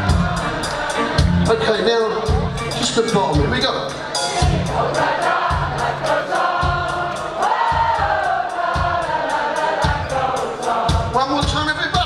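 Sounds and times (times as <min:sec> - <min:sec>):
audience singing along: 0:00.0 - 0:02.9, 0:03.7 - 0:11.4
live rock band playing: 0:00.0 - 0:12.0.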